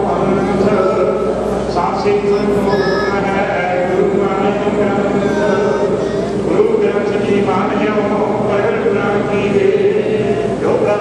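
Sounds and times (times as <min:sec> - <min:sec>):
man chanting a prayer: 0:00.0 - 0:11.0.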